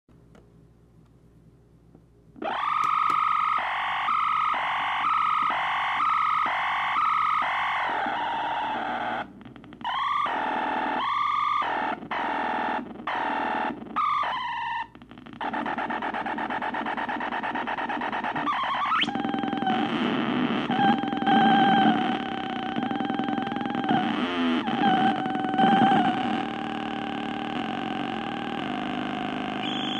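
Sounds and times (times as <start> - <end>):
buzzing electronic drone: 2.4 - 29.9
wobbling electronic tone: 2.4 - 29.9.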